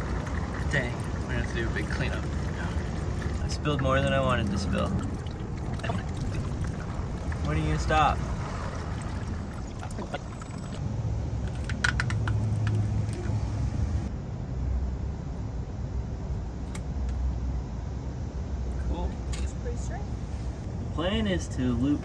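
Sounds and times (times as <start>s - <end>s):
steady low rumble: 0.0s - 22.0s.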